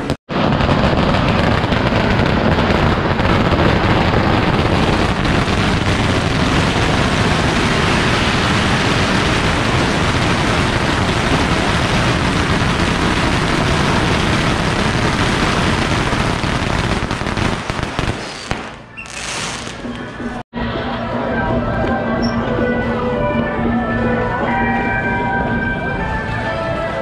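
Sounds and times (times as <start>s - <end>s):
firecrackers crackling: 0.0s - 20.4s.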